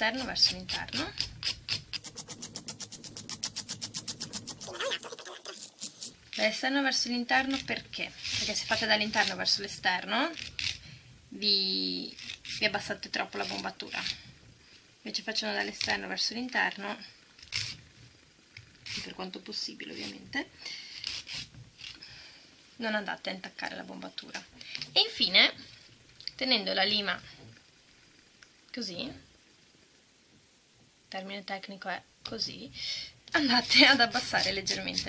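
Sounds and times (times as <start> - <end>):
nail file rasping: 0.2 - 6.6, 7.4 - 9.5, 10.4 - 10.8, 12.1 - 14.2, 17.4 - 17.8, 18.8 - 19.2, 19.9 - 20.2, 21.0 - 22.0, 33.4 - 35.0.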